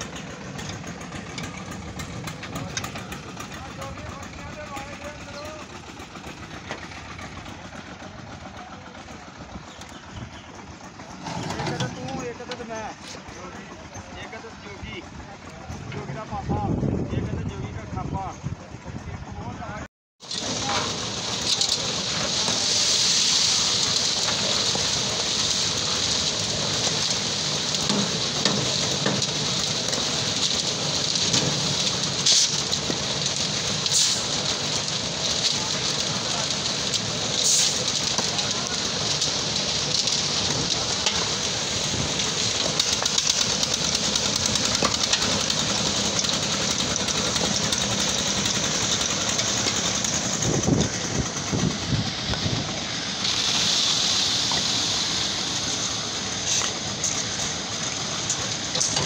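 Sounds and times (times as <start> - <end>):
concrete mixer running: 0.0 - 59.0.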